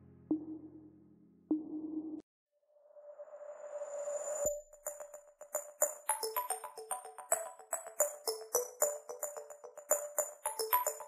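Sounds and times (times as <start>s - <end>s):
soft electronic music: 4.4s - 11.0s
electronic music with clicking beat: 4.5s - 11.0s.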